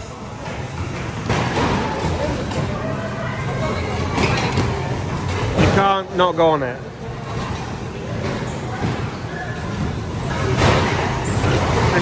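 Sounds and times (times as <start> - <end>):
bumper cars rumbling and humming: 0.0 - 12.0.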